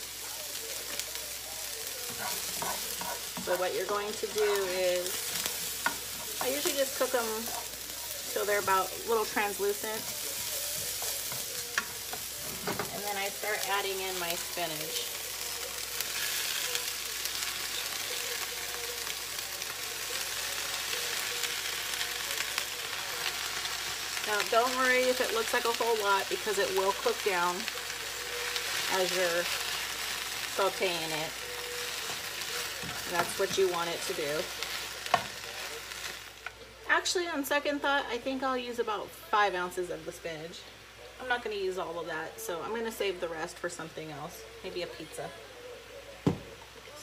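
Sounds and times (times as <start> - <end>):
onion sizzling in a pan: 0.0 - 47.0.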